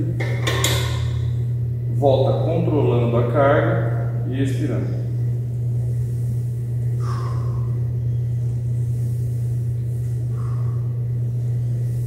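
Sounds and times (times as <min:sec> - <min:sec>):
steady low hum: 0:00.0 - 0:12.0
faint hissing: 0:04.5 - 0:12.0.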